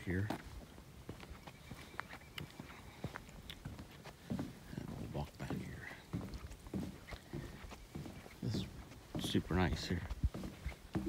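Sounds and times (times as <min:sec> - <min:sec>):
footsteps on plank boardwalk: 0:00.0 - 0:11.0.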